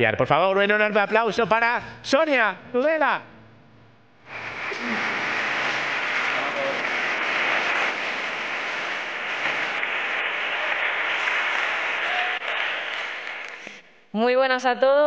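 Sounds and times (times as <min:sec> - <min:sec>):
audience applauding: 0:04.3 - 0:13.8.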